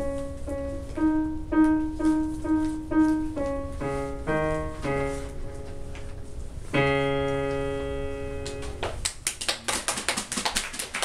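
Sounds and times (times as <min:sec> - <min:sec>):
small audience applauding: 0:08.4 - 0:11.0.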